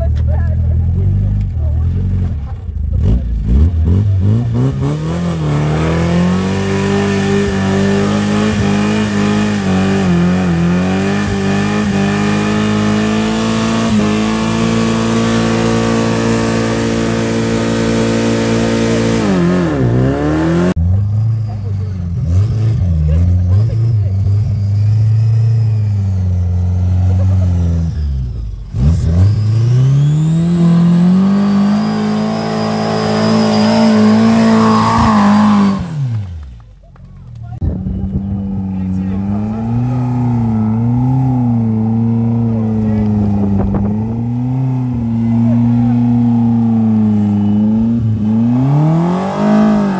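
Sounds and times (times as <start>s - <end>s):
car engines revving high: 0.0s - 49.9s.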